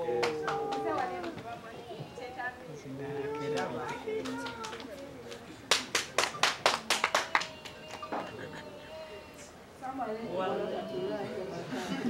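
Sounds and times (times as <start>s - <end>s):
hands clapping rhythmically: 0.0s - 1.5s, 3.4s - 8.4s.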